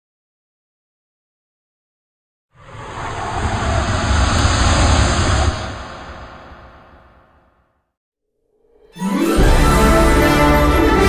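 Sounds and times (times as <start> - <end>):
cinematic whoosh with deep rumble: 2.6 - 7.6.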